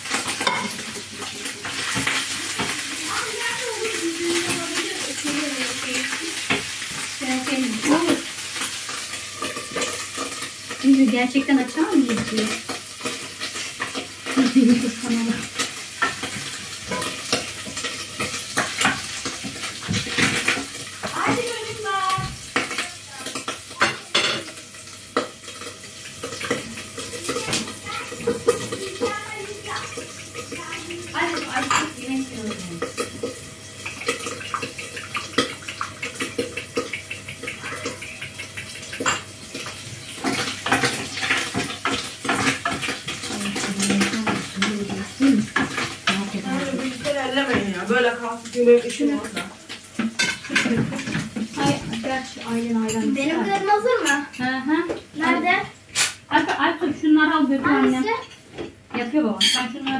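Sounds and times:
utensil scraping frying pan: 0.0s - 54.4s
food sizzling: 0.0s - 59.9s.

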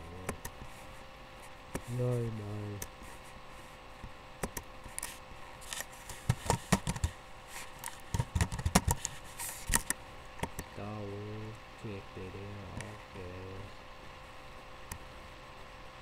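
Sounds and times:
sharp clicks and knocks of handling: 4.4s - 7.1s, 7.8s - 10.7s.

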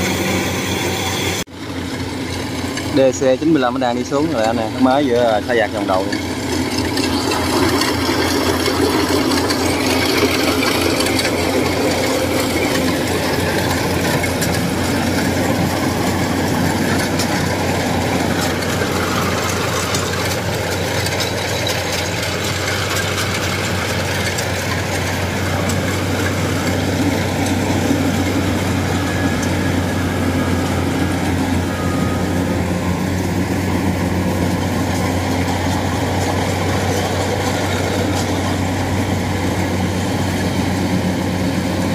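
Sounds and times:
diesel engine humming: 0.0s - 41.9s
harvester cutter whirring: 0.0s - 41.9s.

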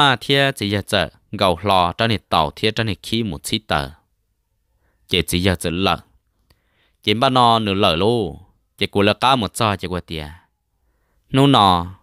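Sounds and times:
person talking: 0.0s - 4.0s, 5.1s - 6.1s, 7.0s - 10.4s, 11.3s - 12.0s.

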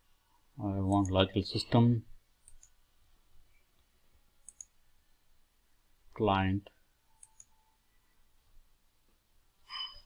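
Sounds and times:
computer mouse clicks: 0.9s - 1.2s, 2.4s - 2.8s, 3.8s - 4.8s, 7.2s - 7.6s.

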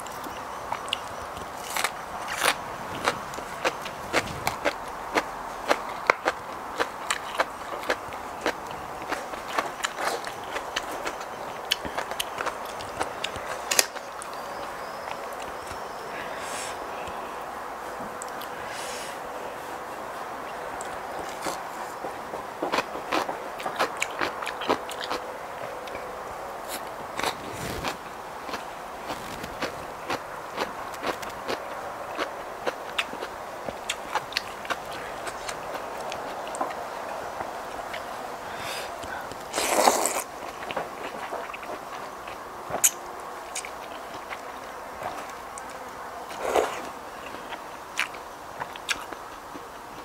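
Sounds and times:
chewing and crunching: 0.0s - 16.0s, 20.4s - 50.0s
steady background hiss: 0.0s - 50.0s
sprouts clicking and crackling: 26.7s - 38.1s.

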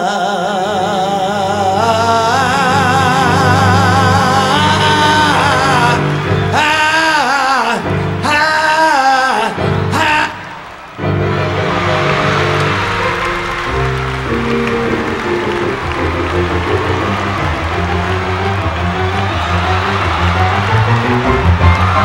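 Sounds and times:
audience cheering and applause: 1.3s - 22.0s
live band keyboard and bass: 9.6s - 22.0s.

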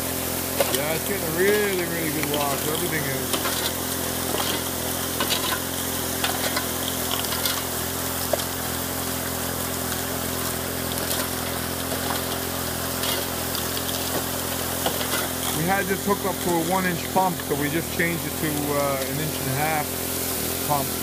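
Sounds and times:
gravel clicking in hopper: 0.0s - 21.0s
water jets spraying: 0.0s - 21.0s
water pump engine hum: 0.0s - 21.0s.

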